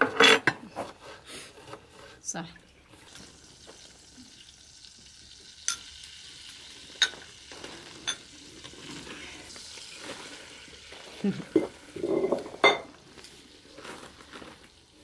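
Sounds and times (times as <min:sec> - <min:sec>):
crockery clinking: 0:07.0 - 0:07.2, 0:08.0 - 0:08.3, 0:11.5 - 0:13.0.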